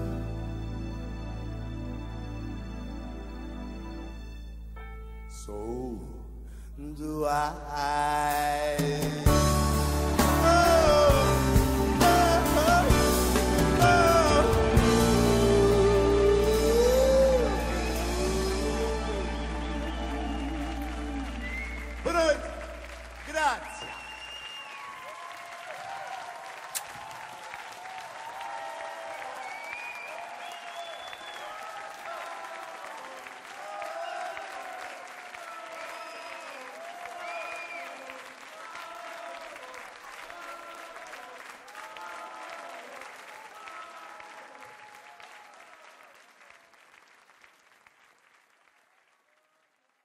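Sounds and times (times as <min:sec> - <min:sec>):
audience applauding: 0:09.2 - 0:50.0.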